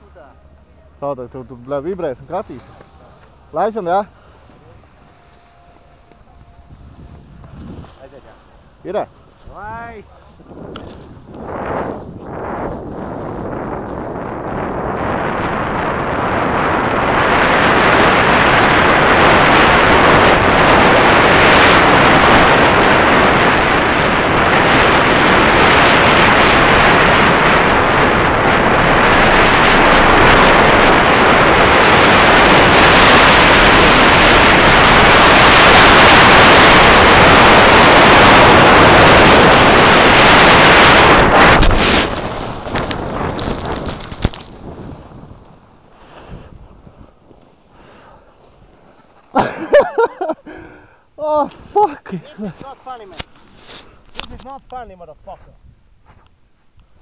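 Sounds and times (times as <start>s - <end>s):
wind rushing over microphone: 6.2s - 48.8s.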